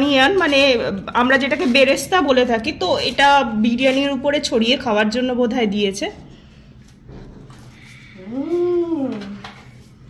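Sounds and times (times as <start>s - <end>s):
woman humming: 8.2s - 9.5s.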